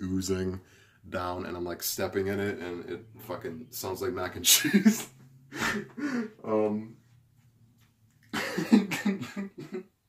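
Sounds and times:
man laughing: 4.4 - 6.6, 8.4 - 10.0.

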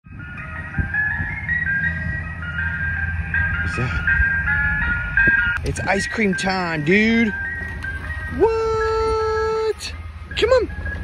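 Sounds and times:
ice cream truck jingle: 0.0 - 11.0
steady low rumble: 0.1 - 11.0.

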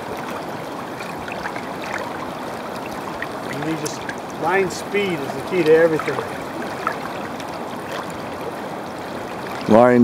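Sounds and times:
flowing river water: 0.0 - 10.0.

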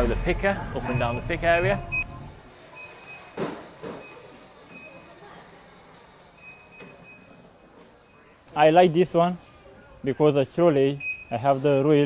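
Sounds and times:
faint warehouse background noise: 0.0 - 12.0.

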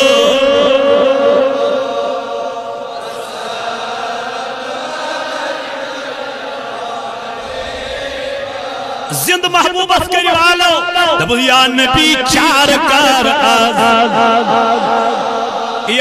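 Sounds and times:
man chanting through microphone: 0.0 - 16.0.

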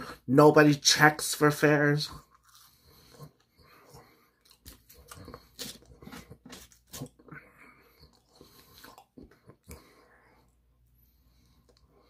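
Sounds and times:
person chewing crunchy food: 2.1 - 12.0.

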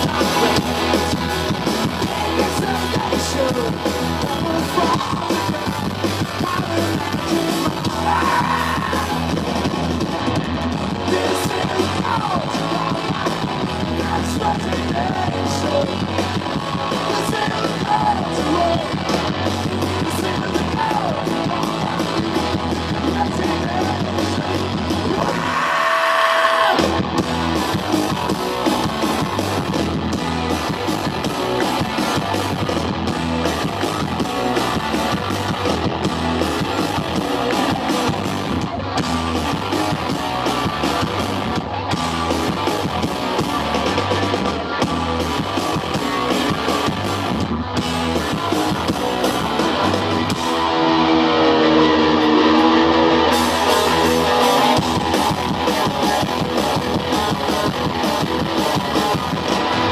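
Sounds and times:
live rock band playing: 0.0 - 59.9
person shouting vocals: 7.8 - 9.2.

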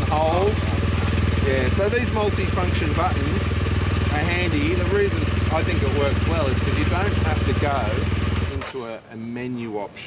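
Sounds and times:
motorcycle engine idling: 0.0 - 8.7.

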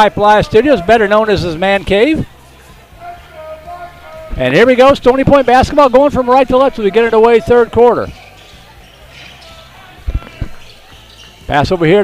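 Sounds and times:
basketball court noise: 0.0 - 12.0
low crowd murmur: 0.0 - 12.0.

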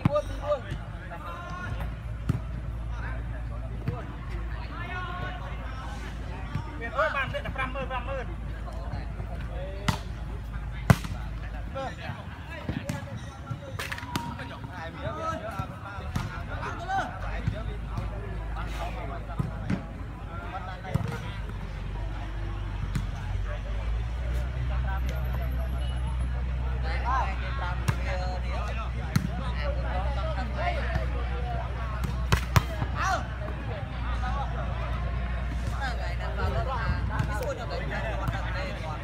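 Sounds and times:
voices of players and onlookers: 0.0 - 39.0
volleyball slapped by hands: 10.8 - 11.2, 32.0 - 32.8.

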